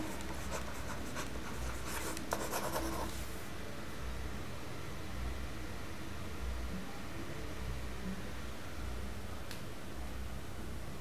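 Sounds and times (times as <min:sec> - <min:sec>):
stylus scratching on tablet: 0:00.0 - 0:03.2
low steady hum: 0:00.0 - 0:11.0.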